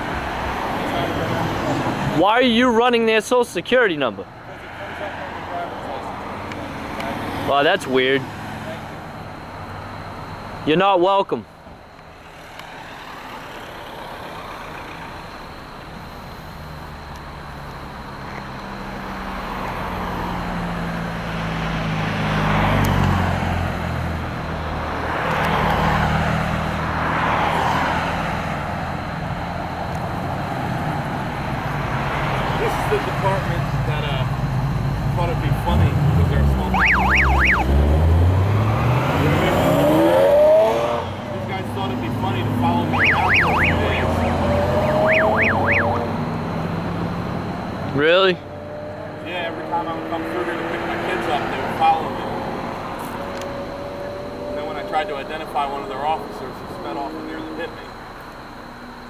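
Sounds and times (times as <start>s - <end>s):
road traffic passing: 0.0s - 59.0s
engine accelerating: 12.4s - 59.0s
quick high chirps: 42.9s - 46.3s.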